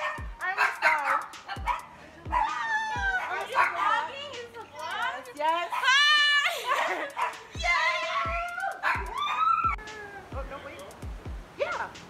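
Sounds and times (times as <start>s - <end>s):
voices: 0.0s - 12.0s
woman laughing with squeals: 1.5s - 3.8s, 5.7s - 10.4s.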